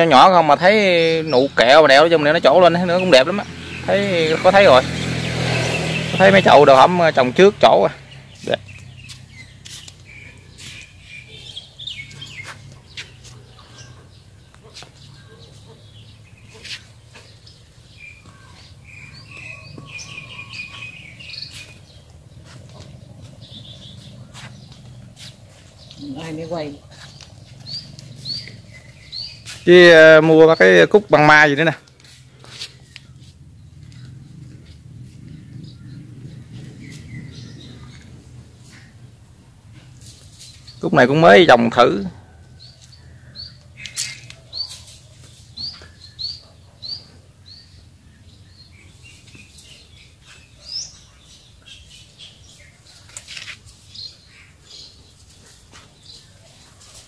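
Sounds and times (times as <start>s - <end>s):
small bird chirping: 5.3s - 31.4s, 32.0s - 39.1s, 42.2s - 57.0s.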